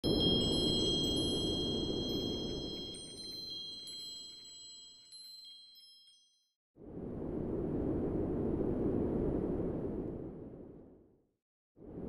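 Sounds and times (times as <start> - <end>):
tinkling chime tones: 0.0 - 6.6.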